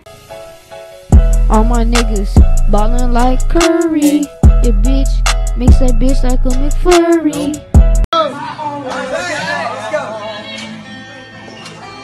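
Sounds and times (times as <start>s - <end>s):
young male voices chattering: 8.2s - 11.6s.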